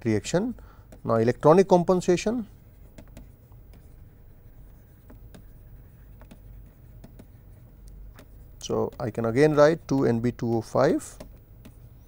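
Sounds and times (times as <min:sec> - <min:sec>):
low steady hum: 0:00.0 - 0:12.0
stylus tapping on tablet screen: 0:02.9 - 0:03.9, 0:04.9 - 0:09.2, 0:10.0 - 0:12.0.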